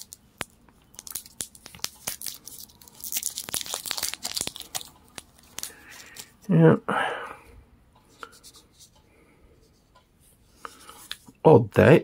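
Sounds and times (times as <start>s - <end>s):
plastic wrap crackling: 0.0s - 6.4s.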